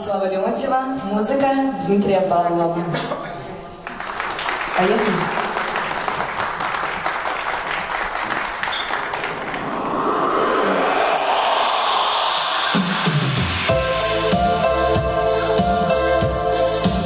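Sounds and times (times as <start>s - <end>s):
audience clapping: 3.8s - 10.8s
backing track swell: 9.0s - 16.8s
music beat: 10.7s - 17.0s.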